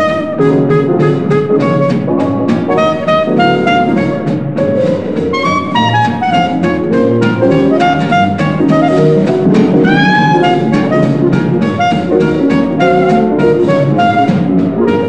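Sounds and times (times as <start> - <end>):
swing dance band playing: 0.0 - 15.0.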